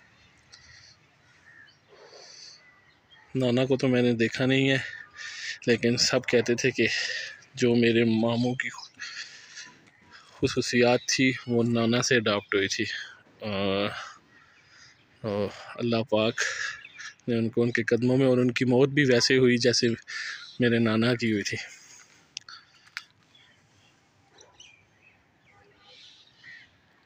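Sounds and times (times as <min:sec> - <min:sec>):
distant bird chirps: 0:00.0 - 0:27.0
man's drawn-out wordless syllable: 0:04.4 - 0:08.4.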